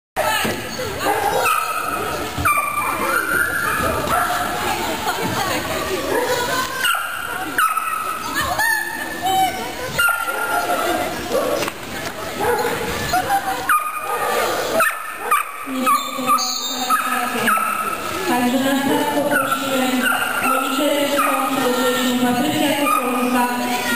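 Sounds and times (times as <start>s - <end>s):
people's voices: 0.2s - 23.9s
dog barking and yelping: 10.0s - 10.7s, 13.7s - 18.0s, 19.3s - 21.5s.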